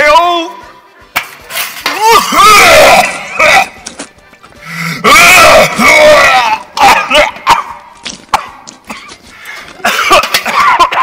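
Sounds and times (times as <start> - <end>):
man retching and vomiting: 2.0 - 3.8, 9.8 - 11.0.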